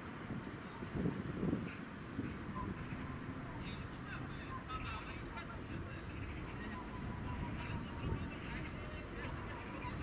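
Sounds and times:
distant bird calls: 1.6s - 10.0s.

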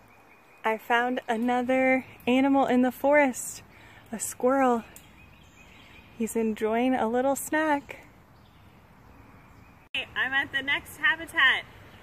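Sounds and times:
woodland background hiss: 0.0s - 12.0s.

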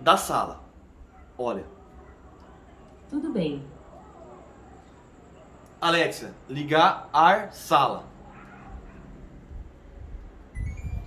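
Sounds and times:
air conditioner beeps rising in pitch: 10.5s - 11.0s.

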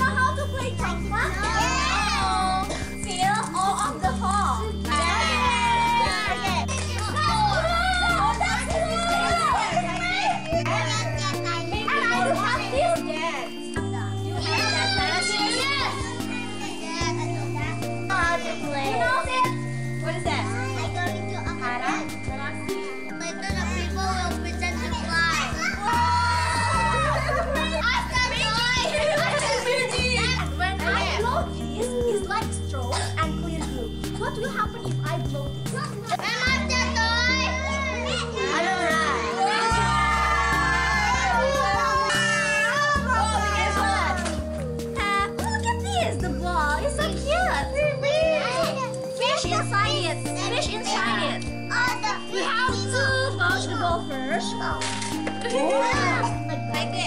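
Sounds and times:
background music with low notes: 0.0s - 57.0s
children chattering: 0.0s - 57.0s.

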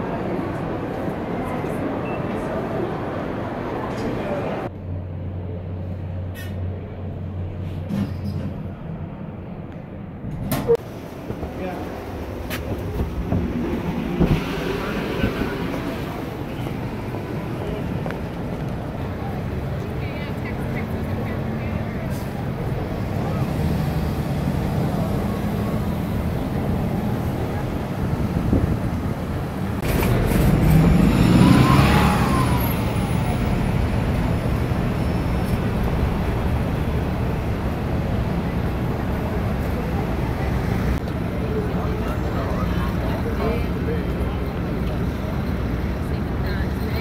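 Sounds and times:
rumble of passing cars: 0.0s - 47.0s
vehicle passing close: 22.2s - 39.0s.

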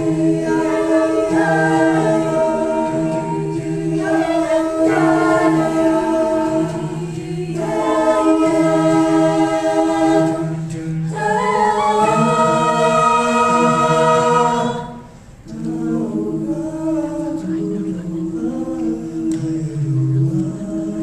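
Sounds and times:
a cappella vocal ensemble singing: 0.0s - 21.0s.

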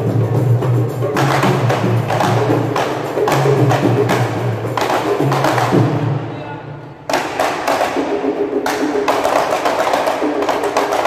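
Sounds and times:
frame drums and bass drum playing: 0.0s - 6.3s.

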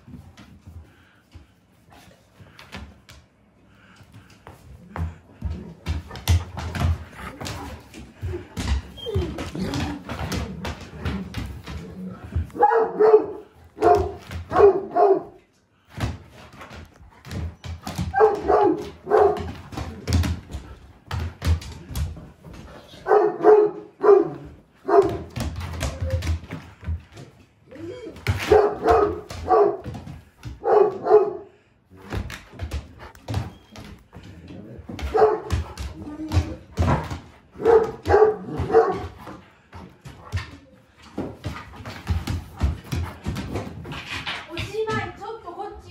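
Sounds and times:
paws on wooden floor: 0.0s - 45.9s
dog barking: 12.6s - 15.4s, 18.1s - 19.5s, 23.0s - 25.3s, 28.4s - 29.9s, 30.6s - 31.5s, 35.1s - 35.6s, 37.6s - 39.2s.

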